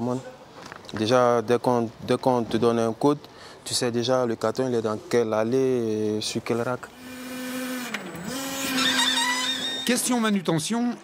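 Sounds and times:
electric forklift motor whining: 0:06.9 - 0:10.1.

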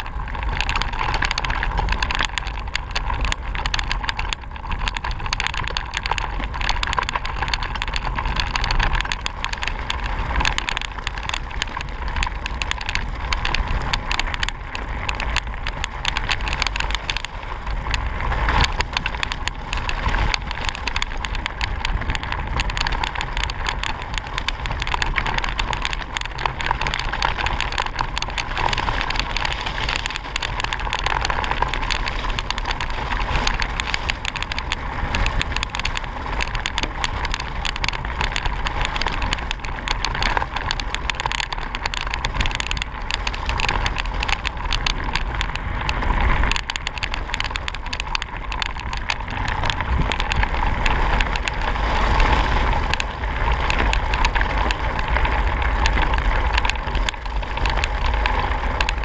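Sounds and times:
bike rattling on gravel: 0:00.0 - 0:59.0
wind and tyres rumbling: 0:00.0 - 0:59.0.

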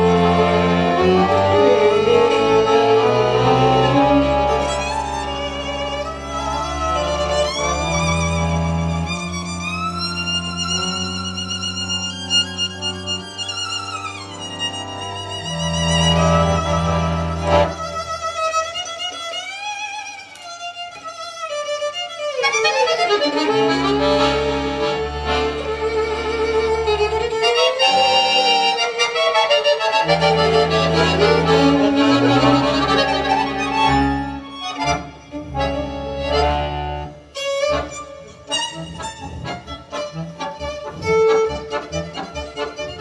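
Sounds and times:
accordion playing: 0:00.0 - 0:43.0
violin playing: 0:00.0 - 0:43.0.

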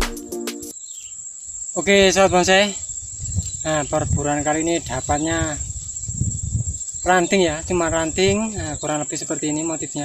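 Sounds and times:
background music with a beat: 0:00.0 - 0:00.7
insect trill: 0:00.7 - 0:10.0
man speaking: 0:07.1 - 0:10.0.

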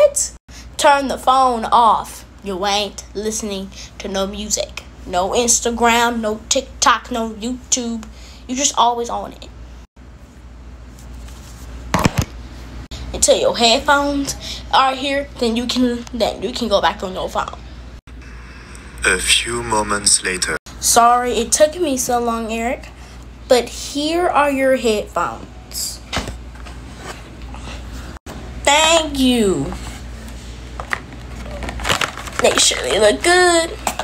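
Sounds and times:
steady low hum: 0:00.5 - 0:34.0.

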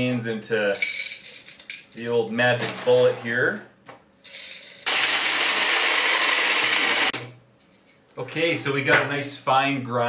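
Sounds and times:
blender grinding coffee beans: 0:04.8 - 0:07.2.

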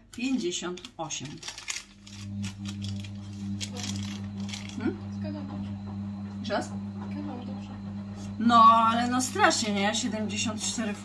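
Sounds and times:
paper receipt rustling: 0:00.0 - 0:04.8
low electrical hum: 0:00.0 - 0:11.0.

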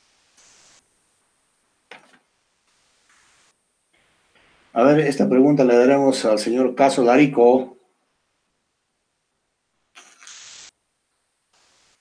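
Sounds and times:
faint hiss: 0:00.0 - 0:12.0.

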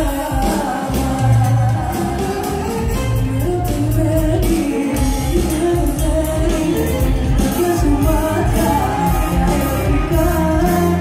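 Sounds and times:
steady beat: 0:00.0 - 0:11.0
woman singing into a microphone: 0:00.0 - 0:11.0.

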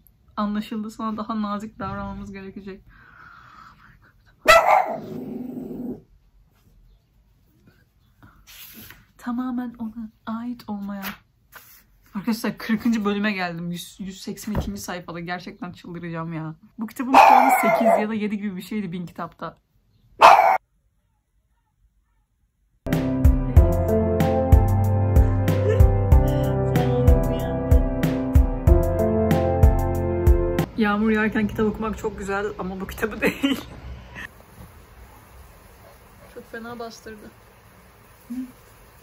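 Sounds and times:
dog barking: 0:04.4 - 0:05.5, 0:17.1 - 0:18.1, 0:20.2 - 0:20.6
dog drawn-out vocalisation: 0:17.2 - 0:18.1.

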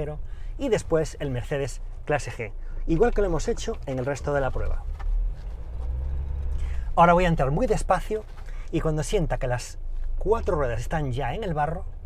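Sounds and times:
engine running at low revs: 0:00.0 - 0:12.0.

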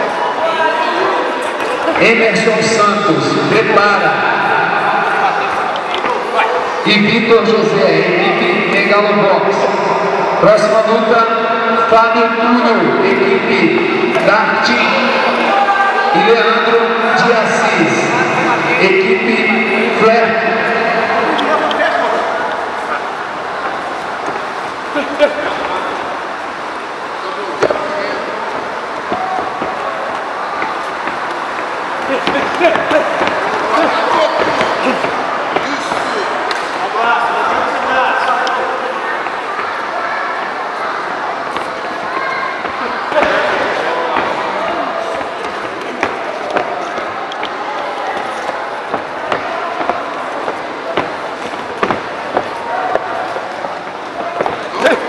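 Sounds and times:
spectators talking and shouting: 0:00.0 - 0:55.0.

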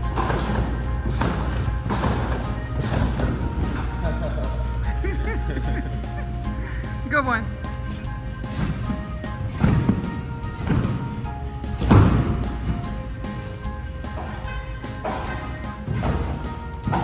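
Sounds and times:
background music: 0:00.0 - 0:17.0
thuds of trampoline landings: 0:08.4 - 0:13.6, 0:14.2 - 0:17.0.

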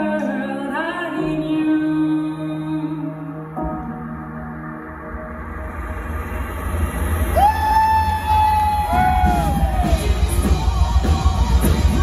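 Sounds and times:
heavy bass and drums rumble: 0:07.4 - 0:12.0.

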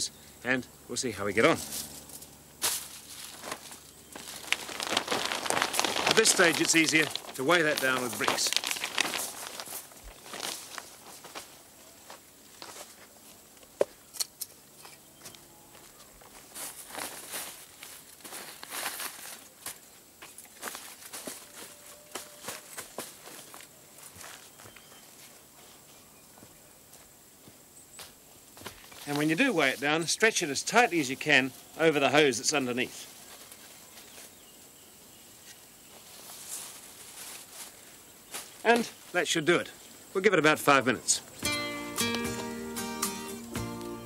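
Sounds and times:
plastic sheeting rustling: 0:02.6 - 0:11.6.

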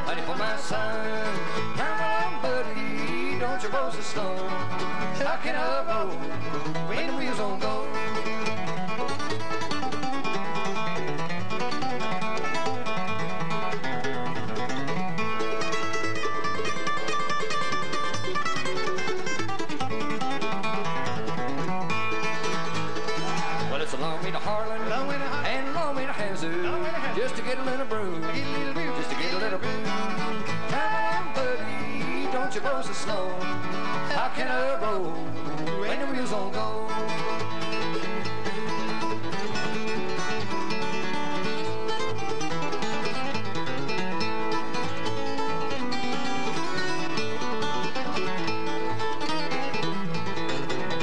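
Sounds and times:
acoustic guitars: 0:00.0 - 0:51.0
mandolin: 0:00.0 - 0:51.0
upright bass: 0:00.0 - 0:51.0.

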